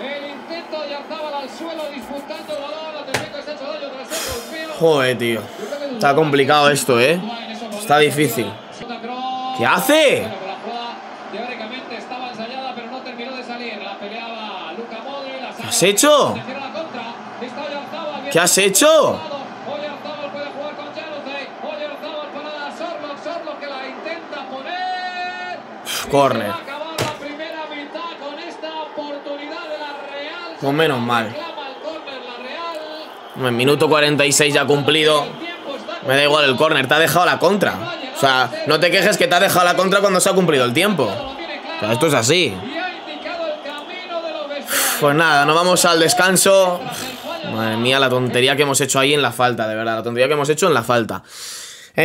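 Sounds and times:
loud talk: 0.0 - 50.9
sharp knock: 27.0 - 27.3.

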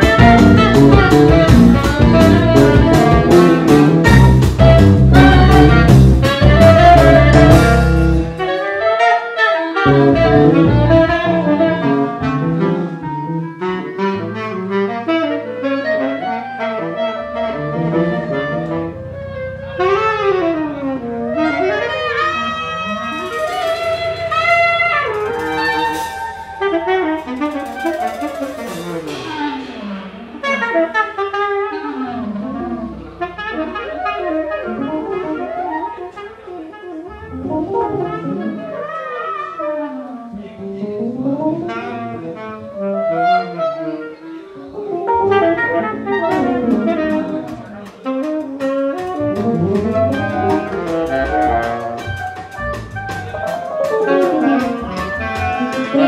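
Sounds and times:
held bass notes: 0.0 - 8.9, 9.8 - 39.1, 39.8 - 56.0
clarinet melody: 0.0 - 56.0
loud full band passage: 0.0 - 56.0
saxophone melody: 0.0 - 56.0.

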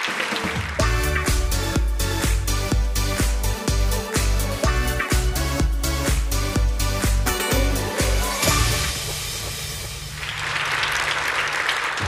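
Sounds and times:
studio audience applauding: 0.0 - 2.6, 10.0 - 12.0
tv jingle: 3.8 - 11.0.

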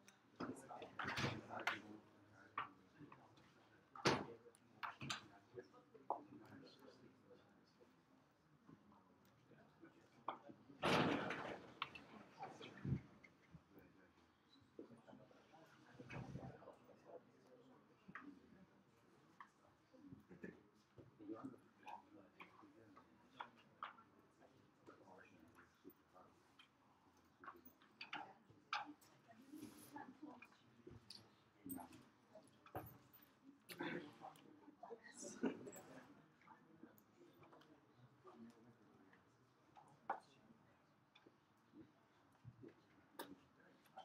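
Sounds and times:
faint murmuring voices: 0.0 - 44.0.

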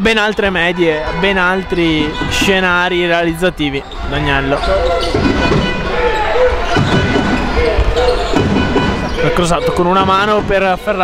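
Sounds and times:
voices in a hall: 0.0 - 11.0
basketball bouncing on court: 6.6 - 9.2.

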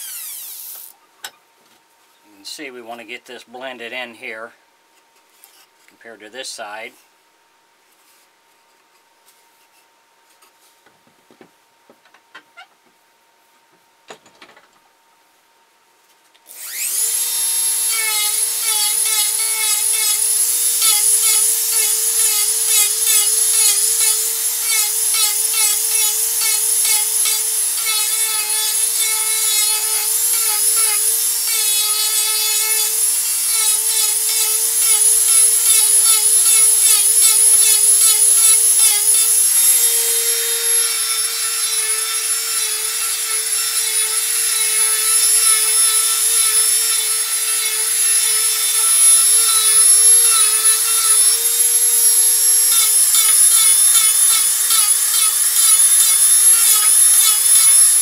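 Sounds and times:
carving bit grinding wood: 0.0 - 0.9, 16.5 - 58.0
rotary tool whining: 0.0 - 1.0, 16.5 - 58.0.

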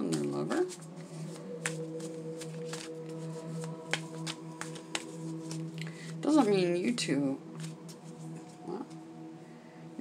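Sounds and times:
cards being shuffled: 0.0 - 5.8, 7.6 - 9.0
drone-like background music: 0.0 - 10.0.

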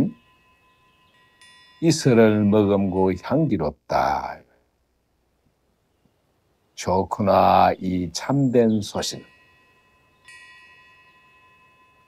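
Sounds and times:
faint metal chime ringing: 0.0 - 3.6, 7.6 - 12.0.

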